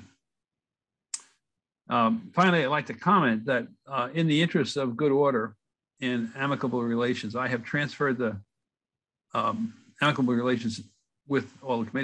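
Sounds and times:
man speaking: 0:01.9 - 0:08.4, 0:09.4 - 0:12.0.

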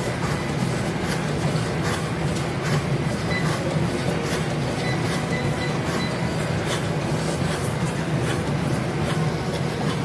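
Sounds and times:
running footfalls on treadmill: 0:00.0 - 0:10.0
treadmill motor and belt hum: 0:00.0 - 0:10.0.

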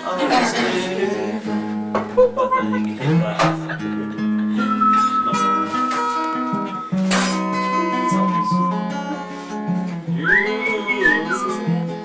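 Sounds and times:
acoustic guitar strumming: 0:00.2 - 0:12.0
person whistling: 0:04.5 - 0:09.3, 0:10.2 - 0:11.8.

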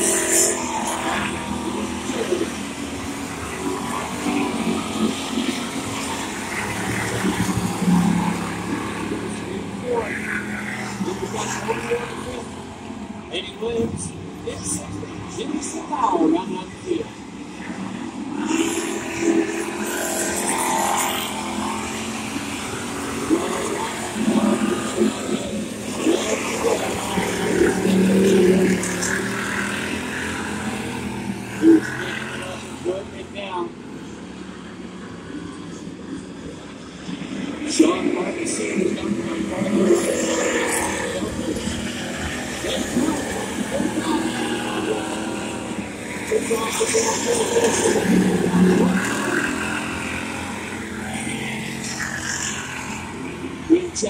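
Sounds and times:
race car engines: 0:00.0 - 0:54.0.

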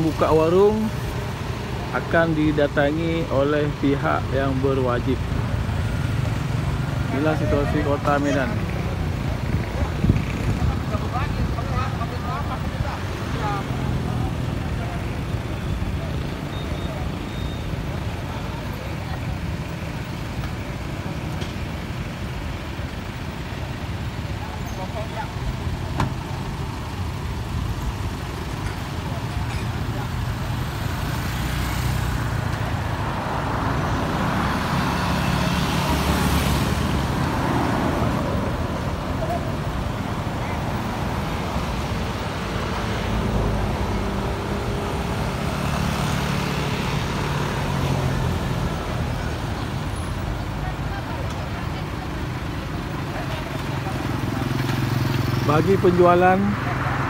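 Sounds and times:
street traffic noise: 0:00.0 - 0:57.0
truck engines at low speed: 0:00.0 - 0:57.0.

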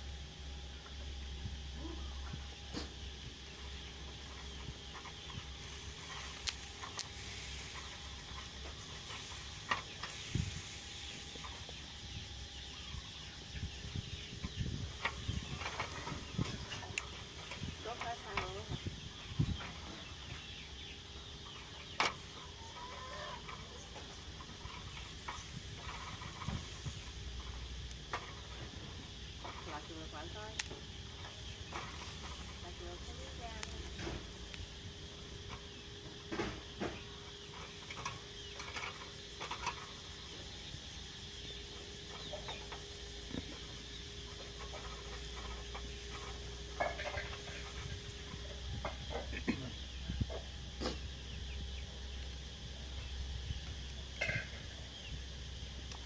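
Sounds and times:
chickens clucking: 0:00.7 - 0:56.0.

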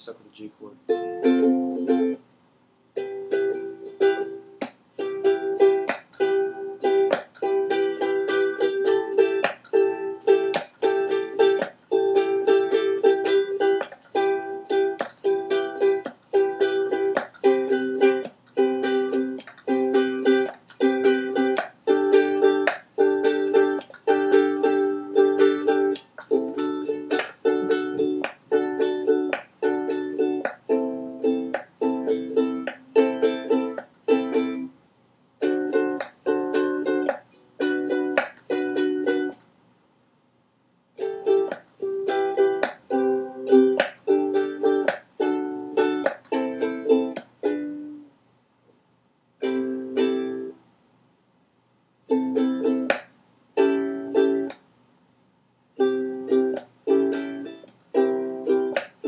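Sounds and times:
ukulele strumming: 0:00.8 - 0:02.3, 0:03.0 - 0:34.8, 0:35.4 - 0:39.4, 0:41.0 - 0:48.1, 0:49.4 - 0:50.7, 0:52.0 - 0:54.7, 0:55.8 - 0:59.0.

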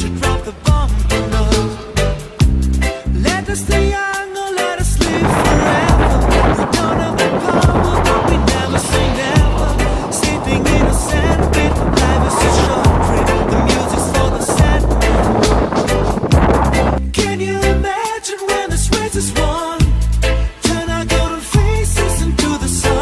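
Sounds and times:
wind buffeting microphone: 0:00.0 - 0:04.0, 0:04.8 - 0:17.1
bicycle rolling on concrete: 0:00.0 - 0:17.0
background music: 0:00.0 - 0:23.0.

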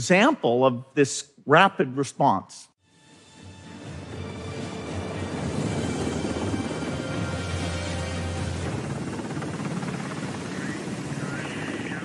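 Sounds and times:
helicopter rotor and engine: 0:04.1 - 0:12.0.

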